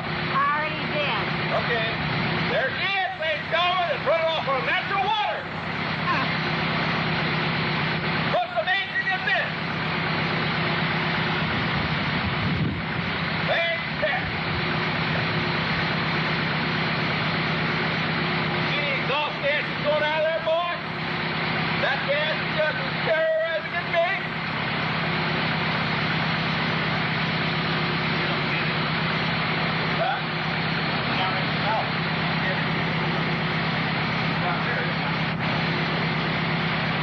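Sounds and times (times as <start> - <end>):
buggy engine idling: 0.0 - 37.0
people talking: 0.4 - 6.5, 8.3 - 9.7, 13.4 - 14.4, 18.5 - 20.9, 21.8 - 24.3, 29.9 - 33.6, 34.3 - 35.9.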